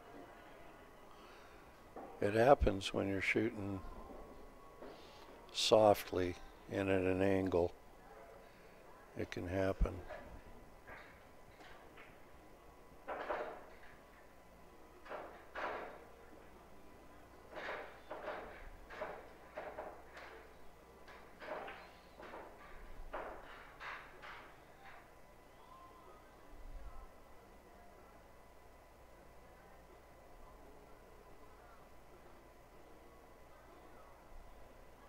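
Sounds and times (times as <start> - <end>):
pool balls and cues knocking: 13.0 - 14.2, 15.0 - 16.3, 17.4 - 25.1.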